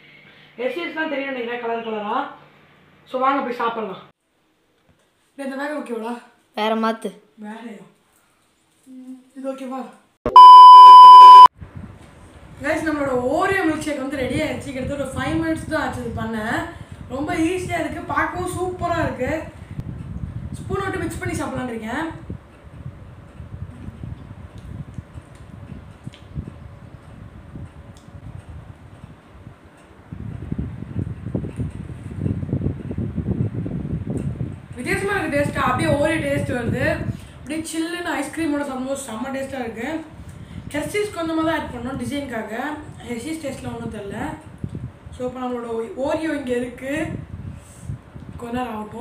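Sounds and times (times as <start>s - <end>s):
high electronic beep tone: 10.3s - 11.5s
wind buffeting microphone: 11.6s - 37.4s, 40.1s - 45.2s, 46.0s - 49.0s.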